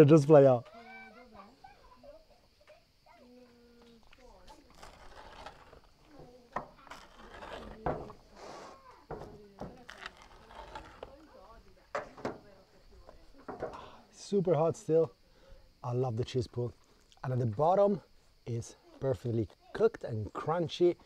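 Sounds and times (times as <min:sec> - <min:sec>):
pizza cutter rolling through crust: 0:04.4 - 0:11.5.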